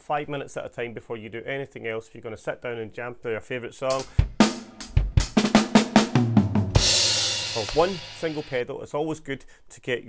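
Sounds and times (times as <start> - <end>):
snare and bass drum strokes: 3.9 - 8.6
deep kick drum thump: 4.2 - 8.3.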